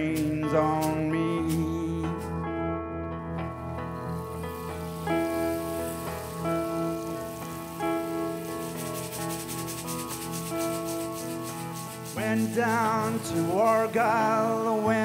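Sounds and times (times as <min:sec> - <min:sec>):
acoustic guitar chords: 0:00.0 - 0:15.0
rainstick trickling: 0:03.4 - 0:14.5.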